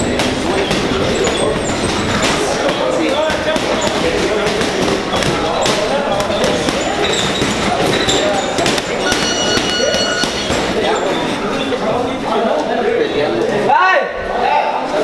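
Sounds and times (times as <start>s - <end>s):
boxing gloves striking heavy bags: 0.0s - 10.8s
busy gym din: 0.0s - 15.0s
indistinct voices: 0.0s - 15.0s.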